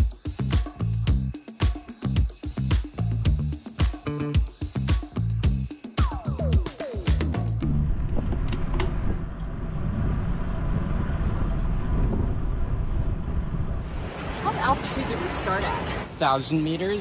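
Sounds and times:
background music: 0:00.0 - 0:07.9
wind buffeting microphone: 0:07.8 - 0:15.9.

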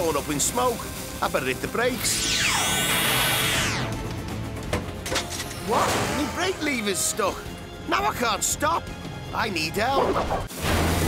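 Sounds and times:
cartoon background music: 0:00.0 - 0:11.0
falling whoosh effect: 0:02.0 - 0:04.0.

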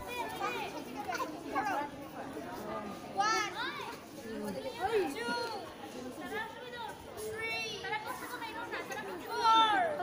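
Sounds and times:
girls talking and calling out: 0:00.0 - 0:10.0.

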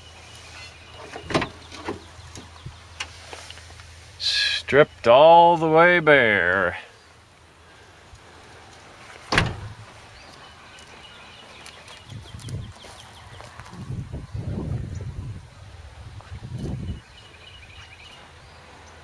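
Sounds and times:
low rumbling microphone noise: 0:13.6 - 0:17.1.

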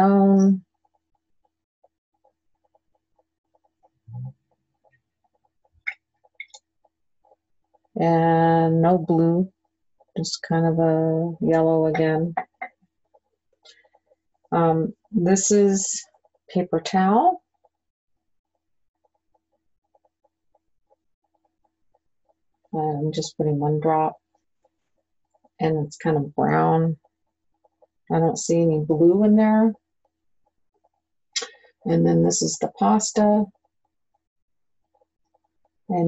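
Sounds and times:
faint irregular ticking: 0:00.0 - 0:36.0.

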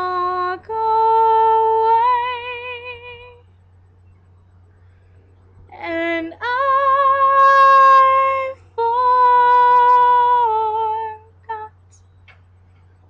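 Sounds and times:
woman singing a cappella: 0:00.0 - 0:03.4, 0:05.7 - 0:12.0.

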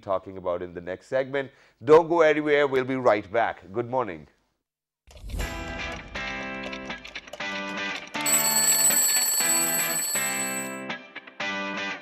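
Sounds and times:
alarm clock bell ringing: 0:08.2 - 0:10.9
jingle music: 0:08.2 - 0:10.9.

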